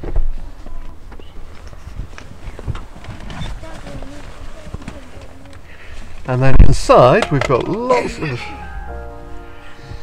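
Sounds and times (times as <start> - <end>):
handling clicks and knocks: 7.0 - 8.0.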